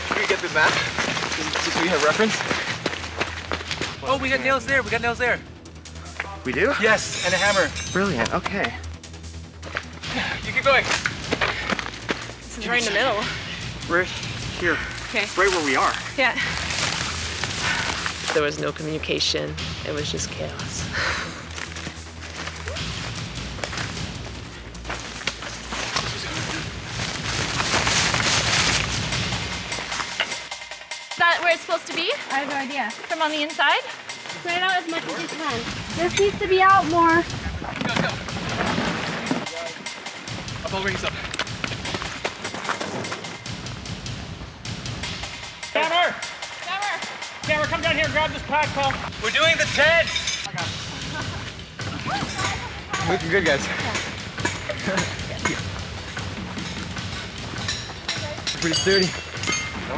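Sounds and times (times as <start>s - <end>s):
footsteps in undergrowth: 0.0s - 4.0s, 15.0s - 18.4s, 21.4s - 30.2s
music with percussive beat: 0.0s - 59.9s
leaves and branches rustling: 14.8s - 18.7s, 24.8s - 30.2s.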